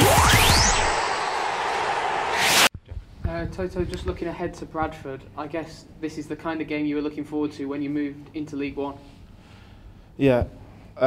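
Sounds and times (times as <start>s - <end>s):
noisy whoosh: 0.0s - 2.7s.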